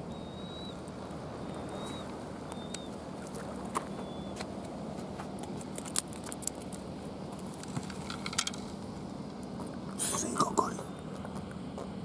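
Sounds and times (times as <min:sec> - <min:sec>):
background hiss: 0:10.0 - 0:10.9.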